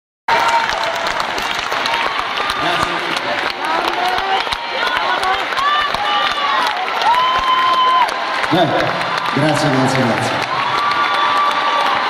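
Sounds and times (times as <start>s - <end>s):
audience applauding: 0.3s - 12.0s
scattered crowd voices: 1.2s - 7.1s.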